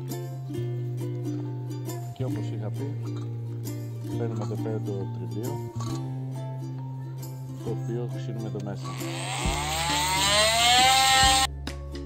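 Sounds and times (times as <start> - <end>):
multi-tool sanding metal: 8.8 - 11.5.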